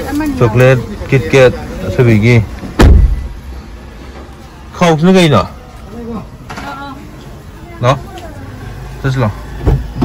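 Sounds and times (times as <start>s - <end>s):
car door shutting: 2.6s - 3.4s, 9.6s - 10.0s.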